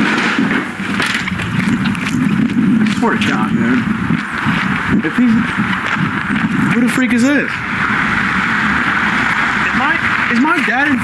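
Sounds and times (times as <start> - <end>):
footsteps: 0.5 - 7.7
car engine running: 0.7 - 11.0.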